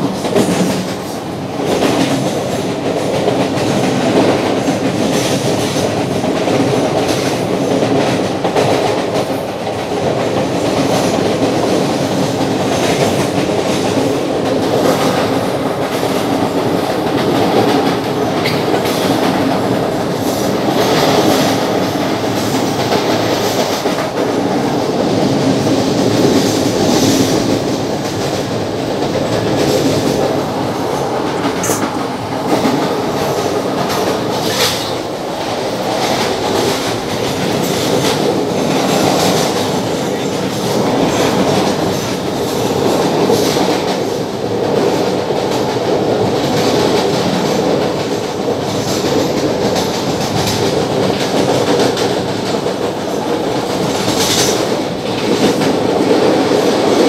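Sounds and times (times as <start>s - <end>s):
train wheels rumbling on rails: 0.0s - 57.0s.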